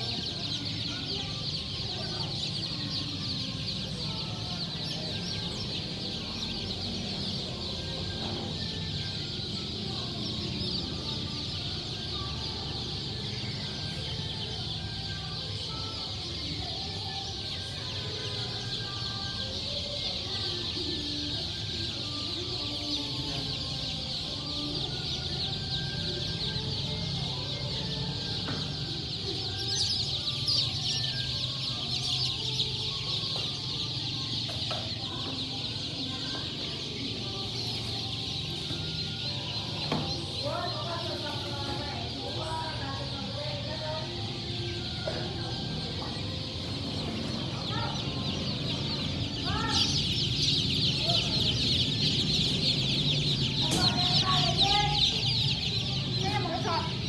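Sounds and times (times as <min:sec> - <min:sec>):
baby chicks peeping: 0:00.0 - 0:57.0.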